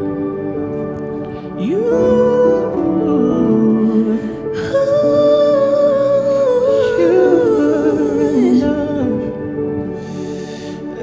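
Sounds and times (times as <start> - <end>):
soft sustained chords: 0.0 - 11.0
wordless singing voice: 1.3 - 11.0.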